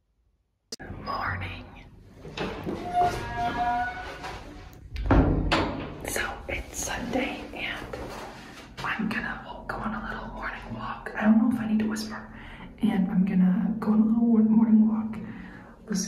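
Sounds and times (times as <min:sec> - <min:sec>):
person whispering: 0:00.8 - 0:02.0, 0:06.0 - 0:08.2, 0:08.8 - 0:12.4.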